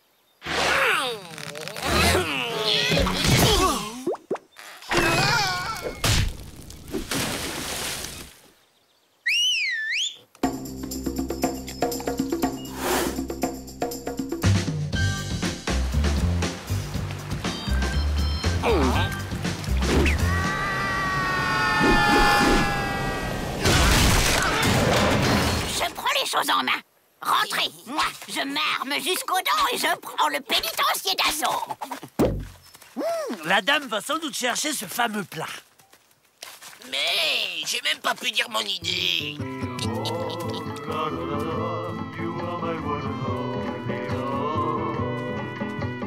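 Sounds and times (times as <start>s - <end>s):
long cartoon crash with cry: 20.2s - 25.1s.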